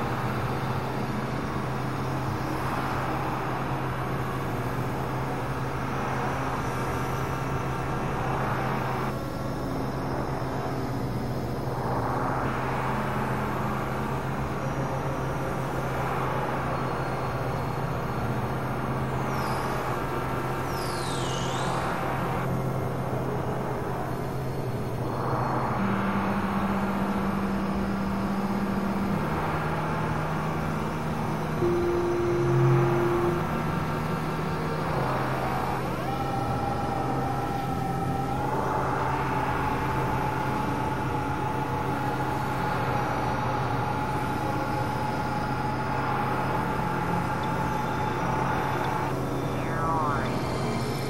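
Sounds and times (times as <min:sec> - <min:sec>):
low synthesizer drone: 0:21.6 - 0:51.0
rising synthesizer sweeps: 0:25.1 - 0:51.0
high held synthesizer tone: 0:31.6 - 0:51.0.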